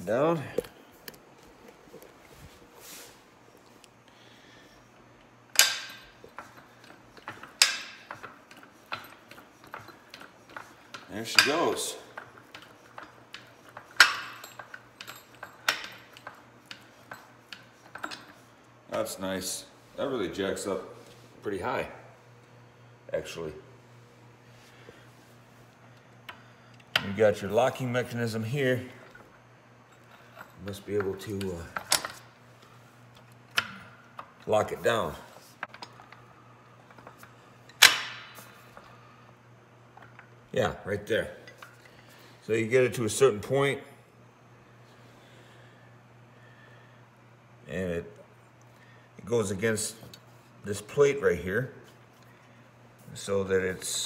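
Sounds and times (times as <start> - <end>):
low steady hum: 0.0 - 54.0
metal clanks of lift jack: 5.6 - 18.4, 36.9 - 38.9.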